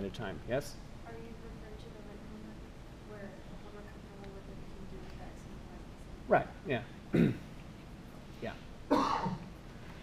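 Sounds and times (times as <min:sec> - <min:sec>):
person coughing: 0:07.1 - 0:07.5, 0:08.9 - 0:09.5.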